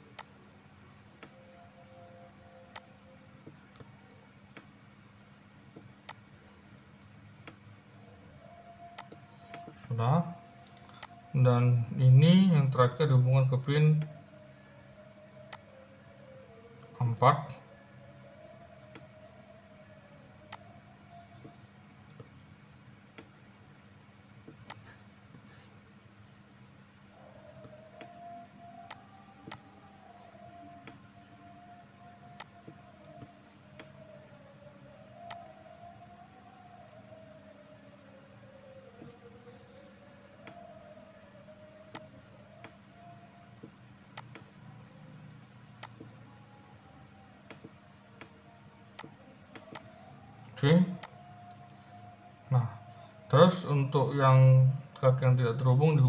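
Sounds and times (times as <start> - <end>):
faint wavering drone: 0.0 - 3.4, 7.9 - 22.0, 27.1 - 43.7, 44.5 - 56.0
steady low hum: 0.0 - 56.0
computer mouse clicks: 8.9 - 9.7, 24.5 - 25.4, 27.6 - 29.6, 35.2 - 35.4, 41.9 - 42.8, 43.6 - 44.5, 49.0 - 49.9.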